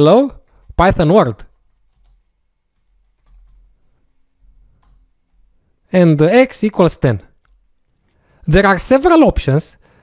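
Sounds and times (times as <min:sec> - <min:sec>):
faint keyboard typing: 0:00.2 - 0:05.8, 0:07.3 - 0:08.2.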